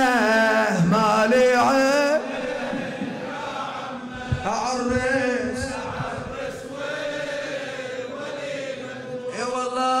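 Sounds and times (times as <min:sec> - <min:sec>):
man chanting a lament: 0:00.0 - 0:02.5, 0:04.2 - 0:07.3, 0:09.2 - 0:10.0.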